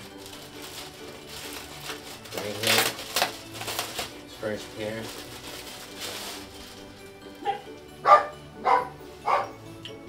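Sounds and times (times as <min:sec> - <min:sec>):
plastic bag crinkling: 0:00.0 - 0:07.1
dog barking: 0:07.4 - 0:09.6.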